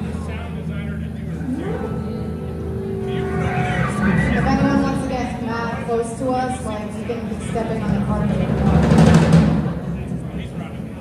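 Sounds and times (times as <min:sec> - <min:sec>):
live rock band playing: 0:01.3 - 0:06.6.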